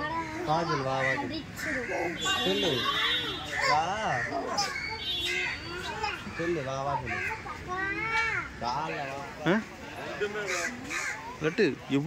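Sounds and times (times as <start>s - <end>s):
crows cawing: 0.0s - 7.6s, 10.1s - 11.7s
chatter of people and children: 0.0s - 12.0s.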